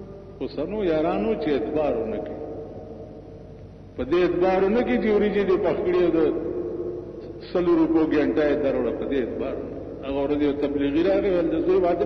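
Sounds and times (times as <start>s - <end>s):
faint low hum: 0.0s - 12.0s
man chanting preaching: 0.4s - 2.4s, 4.0s - 6.4s, 7.4s - 12.0s.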